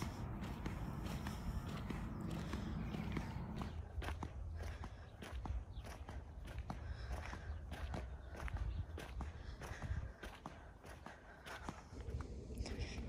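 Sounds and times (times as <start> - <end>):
flip-flops slapping on asphalt: 0.0 - 8.4
steady low rumble: 0.0 - 13.0.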